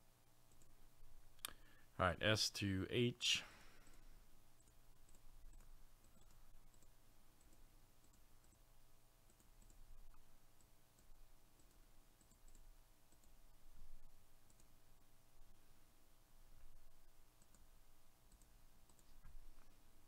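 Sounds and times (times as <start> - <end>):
computer mouse clicks: 0.5 - 0.8, 4.6 - 8.7, 9.3 - 13.4, 14.4 - 14.8, 17.4 - 17.7, 18.3 - 19.7.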